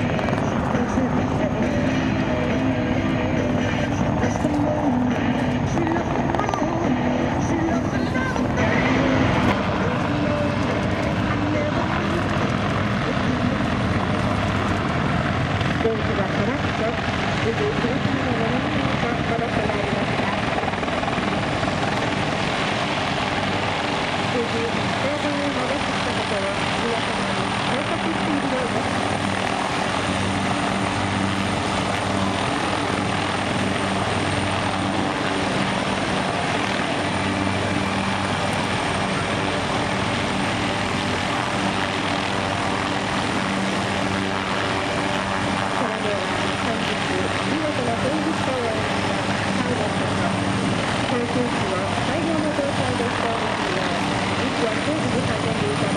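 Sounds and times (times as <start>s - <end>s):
helicopters hovering drone: 0.0s - 55.9s.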